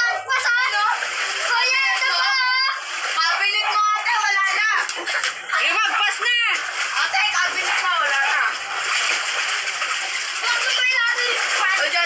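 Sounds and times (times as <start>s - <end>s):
loud excited voices: 0.0s - 8.6s, 10.4s - 12.0s
water splashing in a pool: 0.0s - 12.0s.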